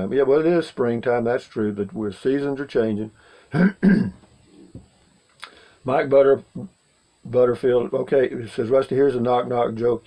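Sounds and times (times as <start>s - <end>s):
man clearing his throat: 3.5s - 4.2s.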